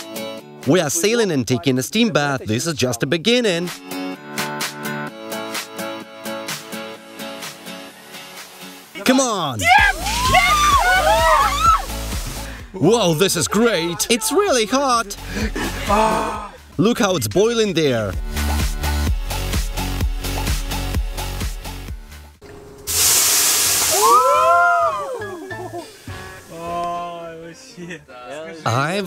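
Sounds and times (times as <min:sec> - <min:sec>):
water splashing on hot stove: 0:08.1 - 0:12.6, 0:22.9 - 0:24.8
drawn-out cry: 0:09.6 - 0:12.0
steam hissing: 0:22.9 - 0:24.3.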